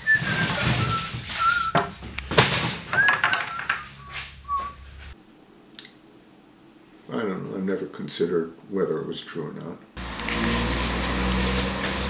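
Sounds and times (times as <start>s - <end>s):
man whistling: 0.0s - 1.9s, 2.9s - 4.8s.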